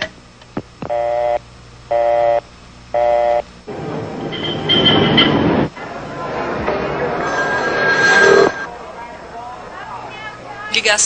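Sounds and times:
vehicle rumble: 3.7s - 8.7s
high squealing tone: 4.2s - 5.5s, 7.0s - 8.7s
buzzy electronic beeps: 7.1s - 8.7s.

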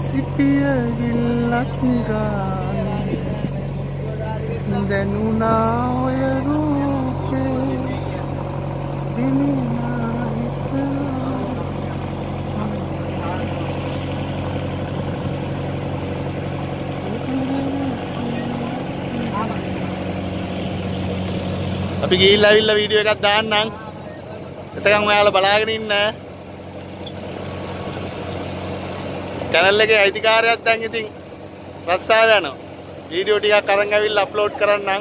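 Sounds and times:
boat engine droning: 0.0s - 35.0s.

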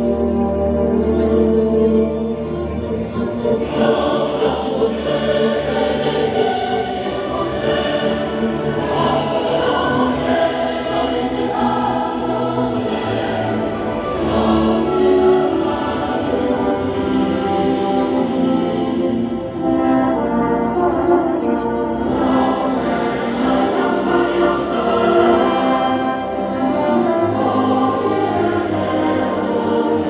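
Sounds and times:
background music: 0.0s - 30.0s
choir singing held notes: 2.8s - 30.0s.

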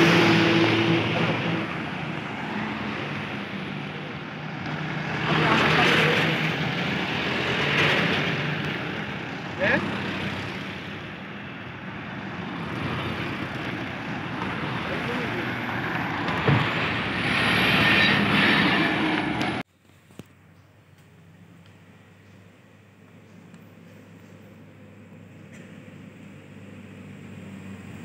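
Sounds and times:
vehicles driving past: 0.0s - 19.7s, 20.6s - 28.0s.

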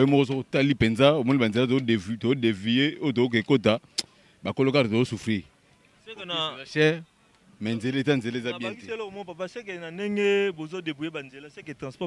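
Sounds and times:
man speaking into a microphone: 4.4s - 12.0s.

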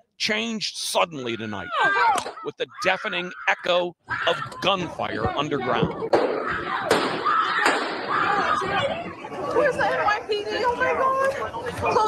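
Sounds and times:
raised voices: 0.8s - 12.0s
gunshots: 6.1s - 8.2s.

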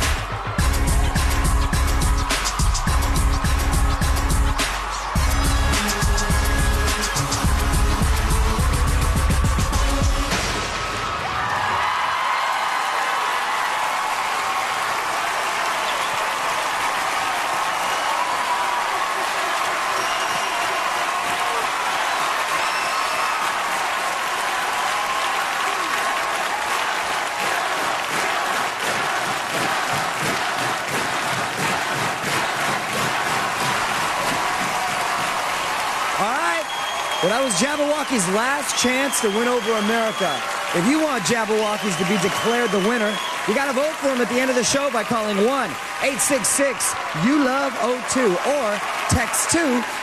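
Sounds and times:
dance music: 0.0s - 11.5s, 23.6s - 50.0s
audience applauding: 0.0s - 50.0s
audience cheering and screaming: 0.0s - 50.0s.

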